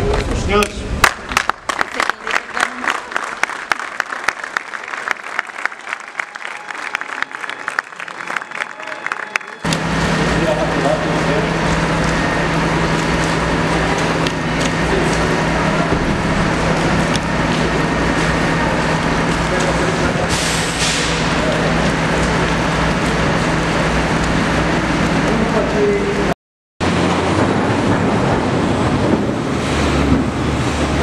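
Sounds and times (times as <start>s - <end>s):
loud machinery drone: 9.4s - 31.0s.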